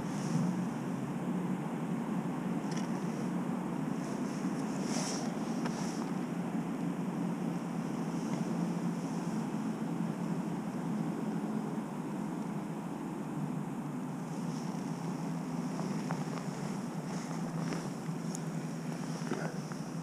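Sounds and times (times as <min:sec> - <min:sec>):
low background rumble: 0:00.0 - 0:20.0.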